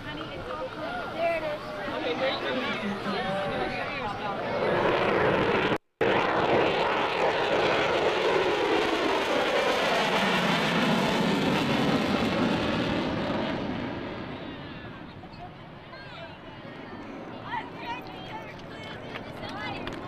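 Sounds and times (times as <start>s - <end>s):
fighter jet passing: 1.8s - 18.4s.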